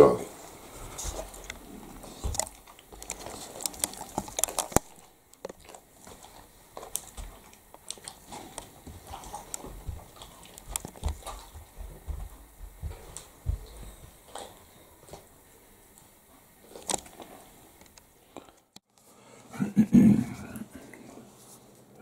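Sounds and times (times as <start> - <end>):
dog crunching a biscuit: 0.8 - 12.0, 16.6 - 17.5.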